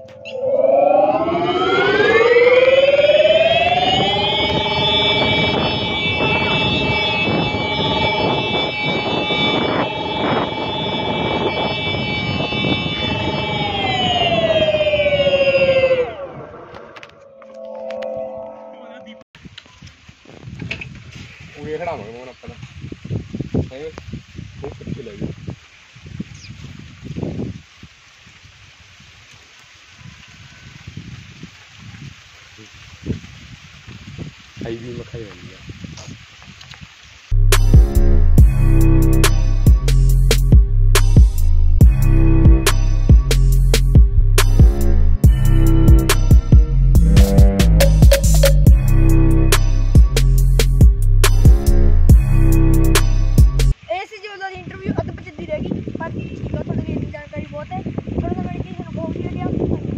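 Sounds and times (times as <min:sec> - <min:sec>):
electric scooter motor whine: 0:00.3 - 0:17.4
road and wind rumble: 0:01.1 - 0:17.3, 0:19.4 - 0:29.2, 0:30.7 - 0:59.9
rain-like background hiss: 0:19.4 - 0:40.2, 0:53.7 - 0:59.9.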